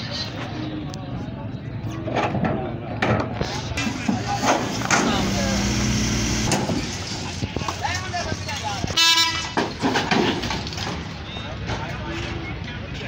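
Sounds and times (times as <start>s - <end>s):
voices: 0.0s - 13.0s
vehicle engine running: 4.2s - 7.0s
loud horn honk: 9.0s - 9.6s.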